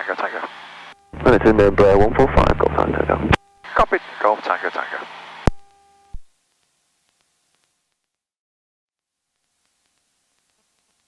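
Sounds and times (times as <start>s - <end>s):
radio hiss: 0.0s - 5.6s
faint steady hum: 0.0s - 7.9s.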